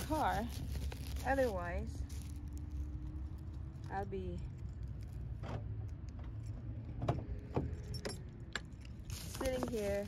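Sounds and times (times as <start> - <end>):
low vehicle rumble: 0.0 - 10.0
car keys jingling: 7.5 - 10.0.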